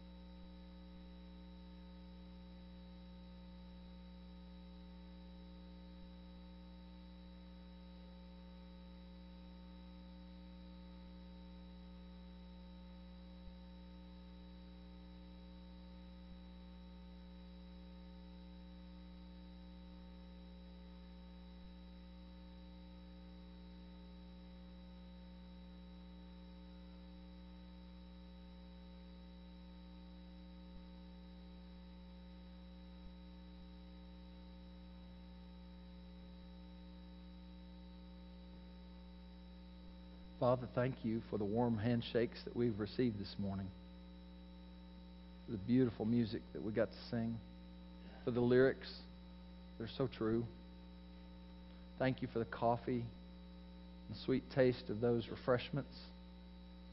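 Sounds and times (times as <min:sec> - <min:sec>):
electrical mains hum: 0:00.0 - 0:56.9.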